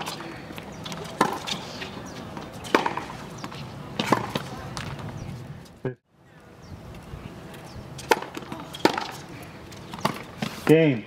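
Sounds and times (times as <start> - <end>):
racquet hitting tennis ball: 0.0 - 4.5, 8.0 - 10.6.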